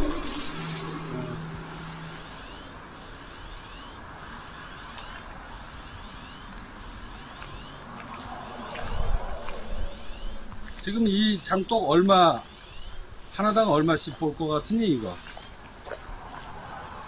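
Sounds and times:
cicada chirping: 0.0s - 17.0s
outdoor background hiss: 0.0s - 17.0s.

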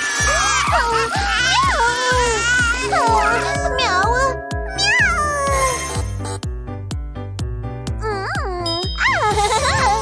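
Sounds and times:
cartoon music with chime: 2.9s - 6.4s, 8.5s - 10.0s.

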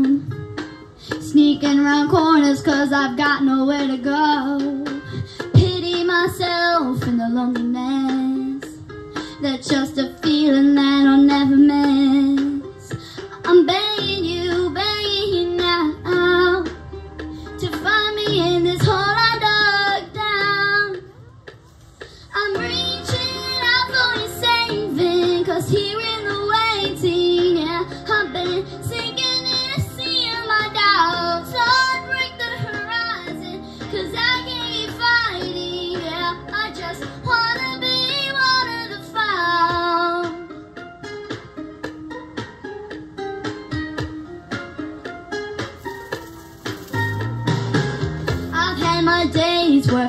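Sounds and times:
girl singing slow song: 0.0s - 41.4s, 48.3s - 50.0s
soft instrumental backing: 0.0s - 50.0s.

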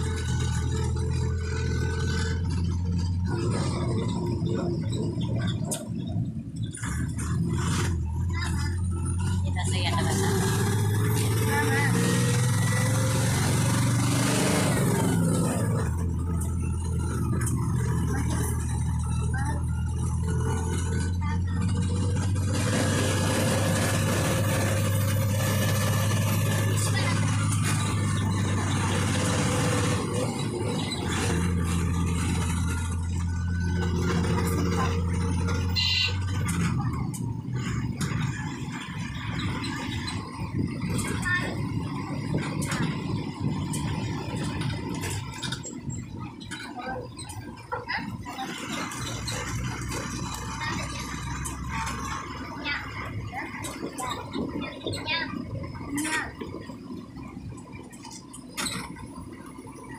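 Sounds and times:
bus diesel engine drone: 0.0s - 59.9s
indistinct voices: 0.0s - 59.9s.

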